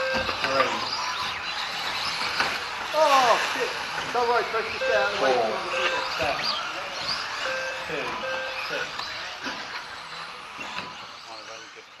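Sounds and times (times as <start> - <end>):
hall background noise: 0.0 - 12.0
indistinct voices: 0.0 - 12.0.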